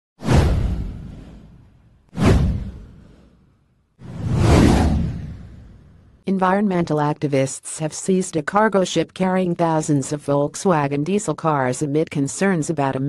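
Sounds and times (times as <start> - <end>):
whoosh sound effects: 2.2 - 3.4, 4.0 - 6.1.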